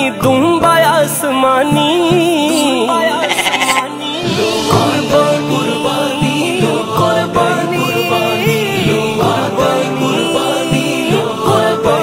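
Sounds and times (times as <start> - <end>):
background music with low drum beats: 0.0 - 12.0
sheep bleating: 3.0 - 4.2.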